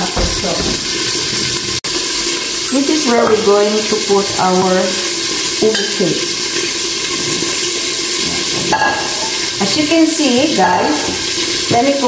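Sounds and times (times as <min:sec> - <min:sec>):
food sizzling in a pan: 0:00.0 - 0:12.0.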